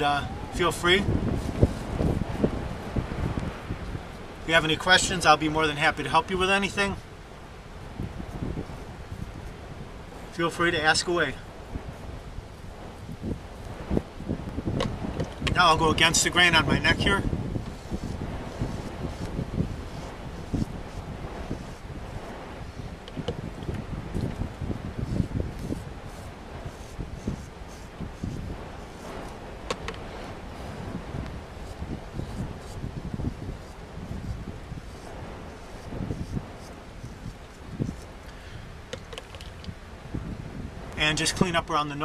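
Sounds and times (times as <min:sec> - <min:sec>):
gusting wind buffeting microphone: 0:00.0 - 0:42.0.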